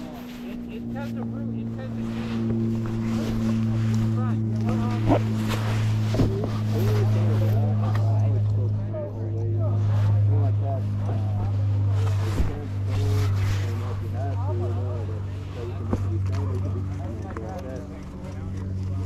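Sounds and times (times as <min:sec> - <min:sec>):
faint voices talking: 0:00.0 - 0:19.0
vehicle engine idling: 0:00.0 - 0:19.0.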